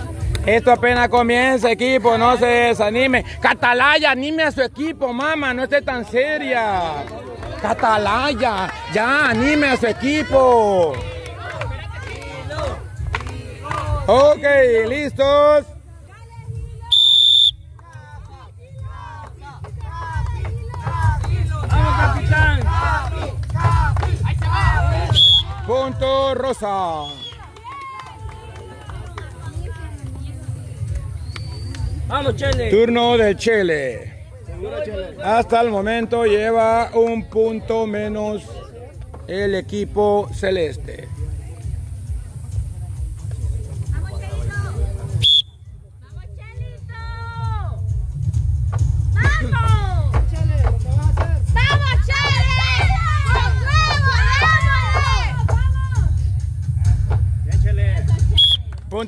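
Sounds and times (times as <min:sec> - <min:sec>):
crowd chattering: 0:00.0 - 0:48.0, 0:49.0 - 0:59.0
shrill whistle blast: 0:16.9 - 0:17.6, 0:25.1 - 0:25.5, 0:45.2 - 0:45.7, 0:58.3 - 0:58.7.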